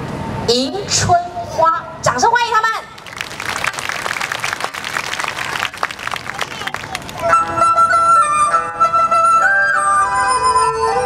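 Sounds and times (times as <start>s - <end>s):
audience applauding: 2.9s - 7.3s.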